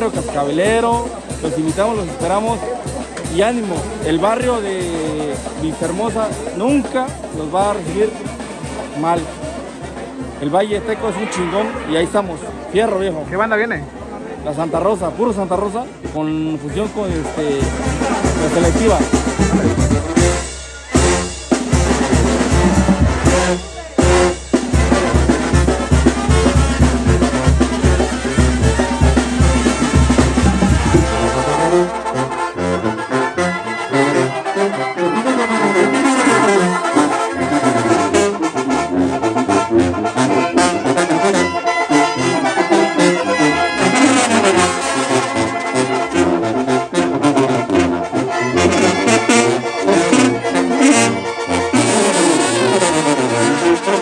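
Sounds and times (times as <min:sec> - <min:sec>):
brass band music: 0:00.0 - 0:54.0
heavy bass drum beat: 0:16.8 - 0:32.2.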